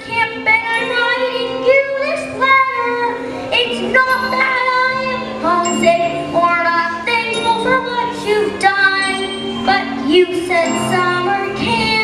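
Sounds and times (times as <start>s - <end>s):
girl singing into a microphone: 0.0s - 12.0s.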